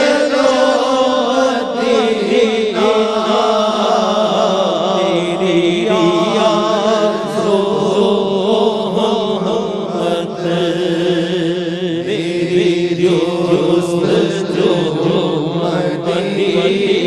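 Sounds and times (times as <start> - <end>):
man chanting into a microphone: 0.0 - 17.0.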